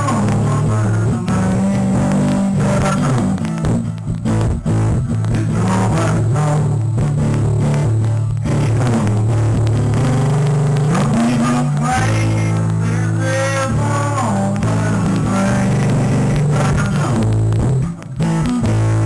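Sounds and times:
acoustic guitar strumming: 0.0 - 19.0
looped guitar part: 0.0 - 19.0
low bass notes: 0.0 - 19.0.

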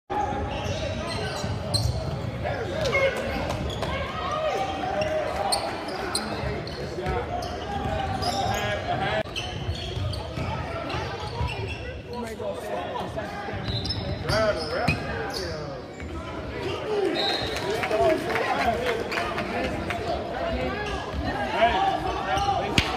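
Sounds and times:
sneakers squeaking: 0.1 - 12.5, 13.4 - 17.6.

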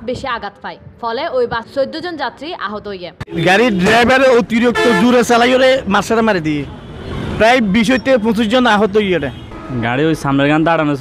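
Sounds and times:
road traffic: 0.0 - 11.0
man talking: 3.3 - 6.7, 7.4 - 11.0.

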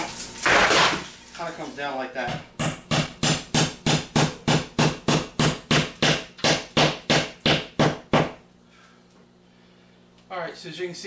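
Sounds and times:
hammer driving nails: 2.6 - 8.3.

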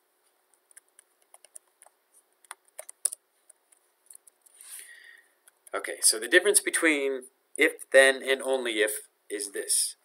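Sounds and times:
computer keyboard and mouse clicking: 0.5 - 4.6.

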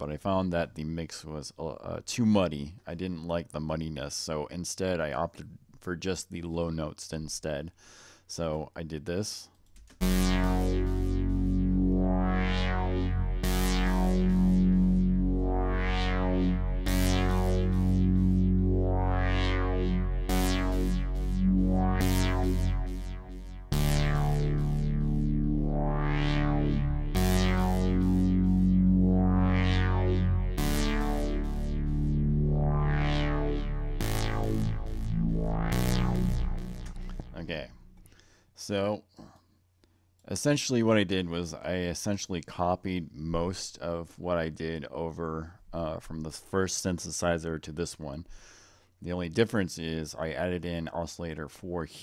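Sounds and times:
low synth chord notes: 10.0 - 38.1
synthesizer pad with filter sweep: 10.0 - 38.1.

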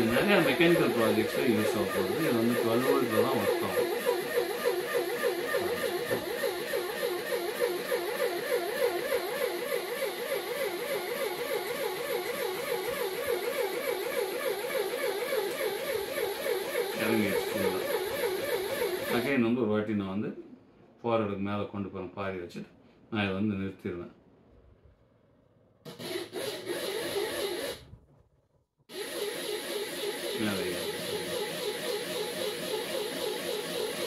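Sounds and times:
small electric motor humming: 0.0 - 19.3, 28.9 - 34.0.

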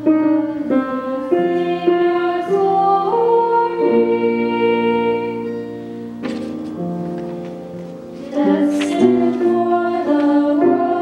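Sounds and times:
piano: 0.0 - 11.0
woman singing: 0.2 - 5.6, 8.2 - 11.0
guitar: 4.5 - 10.5.

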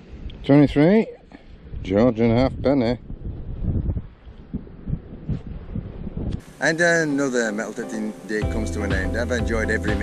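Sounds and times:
wind buffeting microphone: 0.0 - 7.2.

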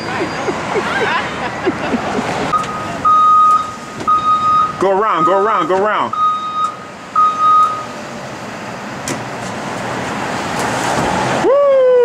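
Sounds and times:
electronic warning beeps: 2.5 - 7.9.

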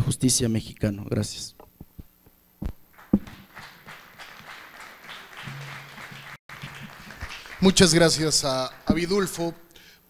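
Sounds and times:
scattered applause: 2.9 - 9.4.

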